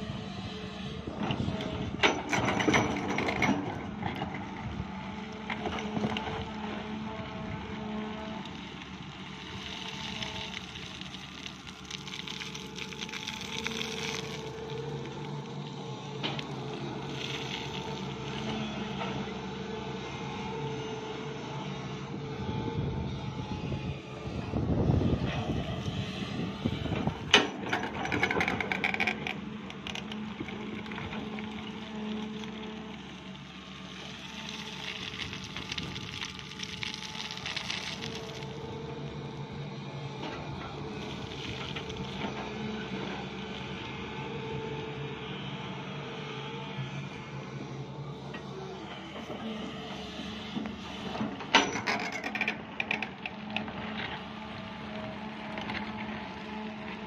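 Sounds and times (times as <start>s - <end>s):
excavator diesel engine running: 0.0s - 57.0s
earth and stones scraping and tumbling: 7.8s - 18.6s, 26.9s - 38.8s.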